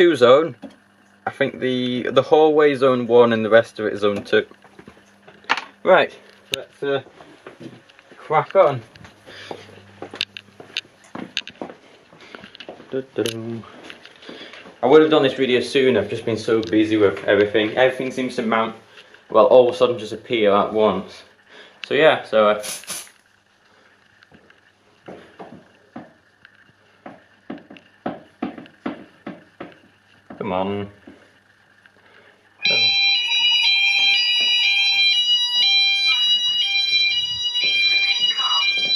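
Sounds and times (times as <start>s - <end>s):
footsteps: 4.2s - 5.5s, 6.2s - 15.0s, 34.0s - 35.2s, 36.1s - 38.9s.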